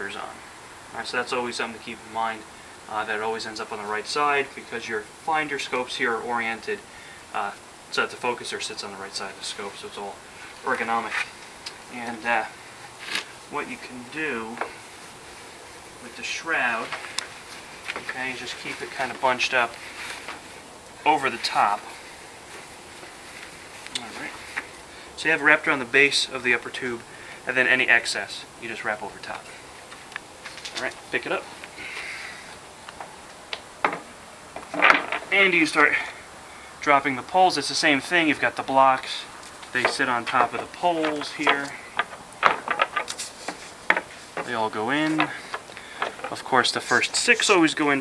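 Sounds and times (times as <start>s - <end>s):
low steady hiss: 0.0s - 48.0s
fabric rustling: 14.7s - 24.7s
poles clicking into blocks: 39.8s - 43.3s.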